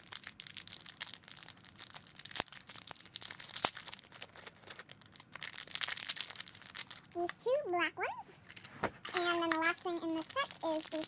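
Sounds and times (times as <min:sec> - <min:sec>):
plastic packaging crinkling: 0:00.0 - 0:07.6, 0:08.6 - 0:11.0.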